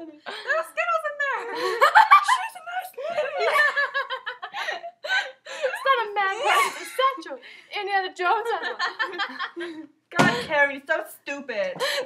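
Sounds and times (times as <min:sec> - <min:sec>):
young women laughing: 0:01.4 - 0:07.3, 0:08.4 - 0:10.0, 0:11.8 - 0:12.0.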